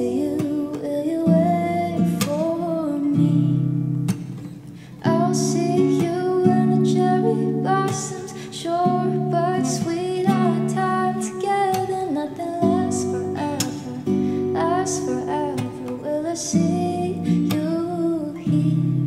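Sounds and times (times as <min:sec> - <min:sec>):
woman singing: 0:00.0 - 0:04.2, 0:04.8 - 0:19.0
acoustic guitar: 0:00.0 - 0:19.0.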